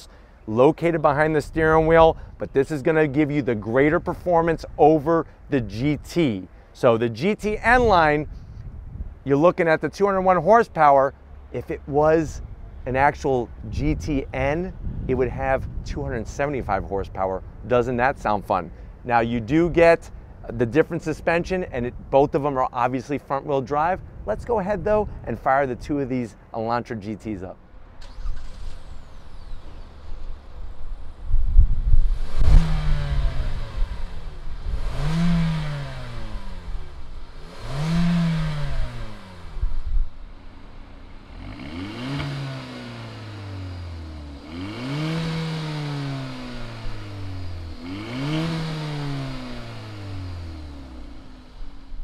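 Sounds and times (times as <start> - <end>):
car engine revving: 27.9 - 31.2, 31.8 - 52.0.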